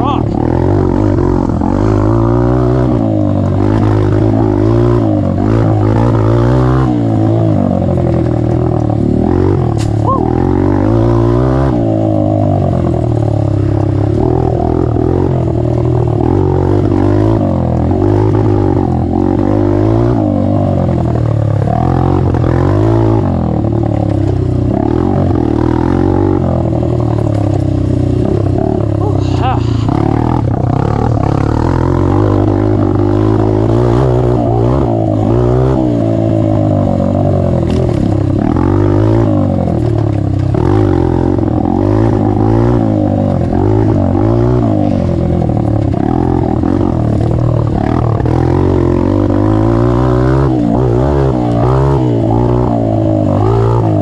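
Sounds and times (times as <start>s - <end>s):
motorcycle engine revving: 0.0s - 54.0s.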